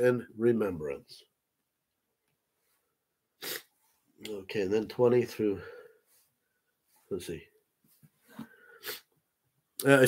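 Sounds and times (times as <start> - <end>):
man sniffing: 3.4 - 3.7, 8.4 - 9.2.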